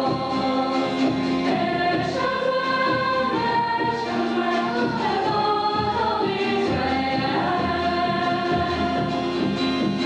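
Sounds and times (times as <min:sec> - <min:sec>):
female choir singing: 0:00.0 - 0:09.5
acoustic guitar: 0:00.0 - 0:10.0.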